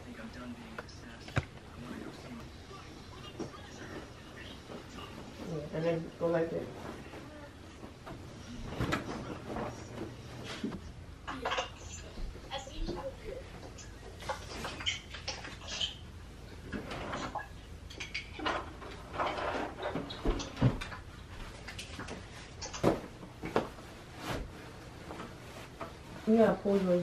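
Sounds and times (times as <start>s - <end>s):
household objects rustling and knocking: 3.4s - 11.5s, 18.1s - 27.0s.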